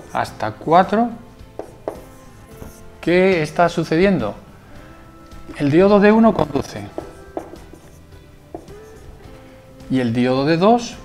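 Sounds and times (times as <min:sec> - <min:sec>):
soft background music: 0:00.0 - 0:11.0
marker tapping on whiteboard: 0:01.6 - 0:02.8, 0:06.9 - 0:09.0.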